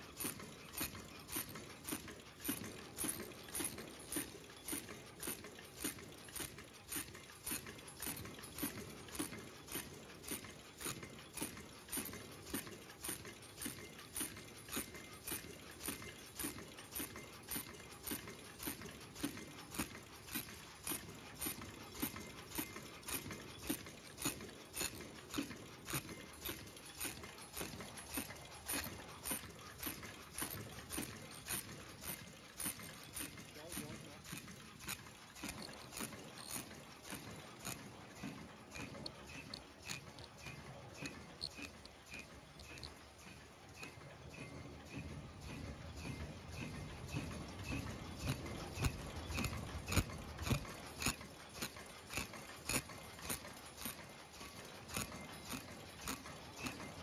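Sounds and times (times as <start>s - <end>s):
machine clacking steadily: 0.0s - 57.0s.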